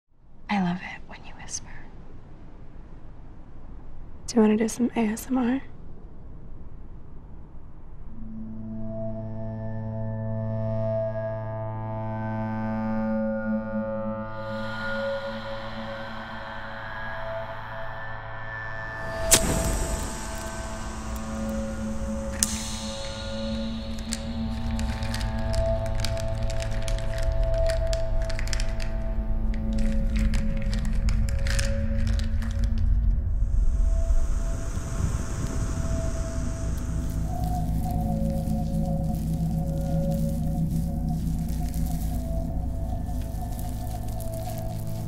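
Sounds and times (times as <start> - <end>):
woman whispering: 0.5 - 1.9
low sustained drone: 7.8 - 45.0
lighter flame hissing: 19.0 - 26.8, 34.1 - 45.0.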